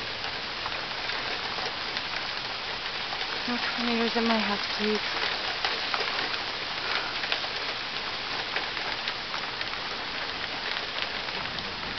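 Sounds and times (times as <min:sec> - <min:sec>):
heavy rain pouring: 0:00.0 - 0:11.9
sharp clicks of raindrops: 0:00.0 - 0:11.9.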